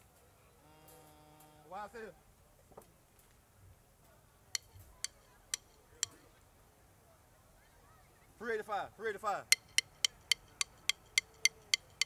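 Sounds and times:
drumstick clicks: 0:04.6 - 0:06.2, 0:09.5 - 0:12.0.

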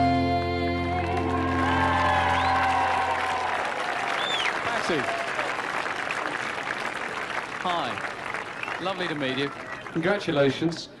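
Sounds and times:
audience applauding: 0:00.8 - 0:10.9.

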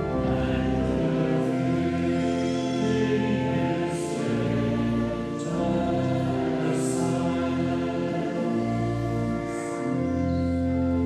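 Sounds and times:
choir singing a slow hymn: 0:00.0 - 0:11.0.

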